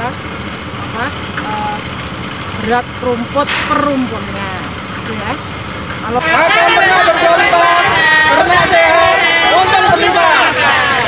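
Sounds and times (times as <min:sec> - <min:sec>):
faint voices: 0:02.6 - 0:11.0.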